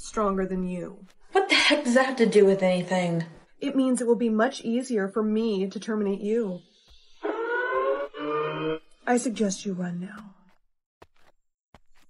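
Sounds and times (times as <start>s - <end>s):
rising siren-like tone: 7.2s - 8.8s.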